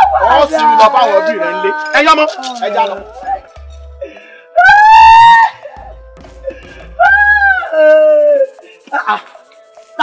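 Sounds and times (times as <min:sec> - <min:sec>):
man howling wail: 0:00.0 - 0:02.1, 0:04.6 - 0:05.6, 0:07.0 - 0:08.6.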